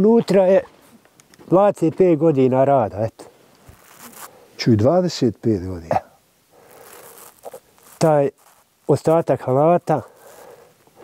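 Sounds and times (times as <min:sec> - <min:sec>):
faint rustling: 0:00.3 - 0:04.8, 0:06.5 - 0:11.0.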